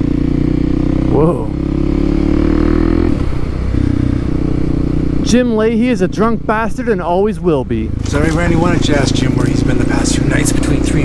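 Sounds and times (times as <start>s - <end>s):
motor vehicle engine running: 0.0s - 11.0s.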